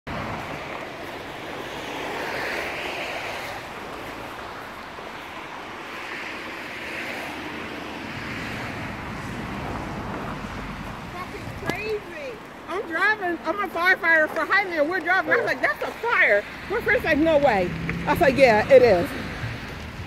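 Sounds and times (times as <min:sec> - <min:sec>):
outdoor noise rush: 0:00.0 - 0:20.0
tyres hissing on wet road: 0:00.1 - 0:13.4.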